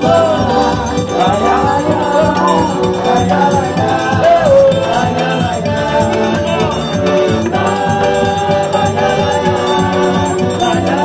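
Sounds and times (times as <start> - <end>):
accordion playing: 0.0 - 11.0
man singing: 0.0 - 11.0
steady beat: 0.0 - 11.0.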